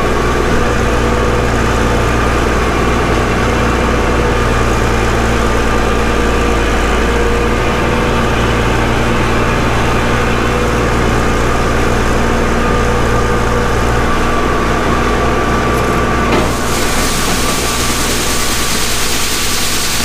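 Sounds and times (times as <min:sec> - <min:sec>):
combine harvester engine drone: 0:00.0 - 0:20.0.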